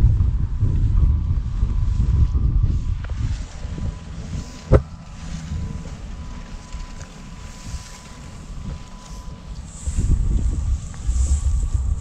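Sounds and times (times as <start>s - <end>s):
street ambience: 0.0s - 12.0s
wind buffeting microphone: 0.0s - 12.0s.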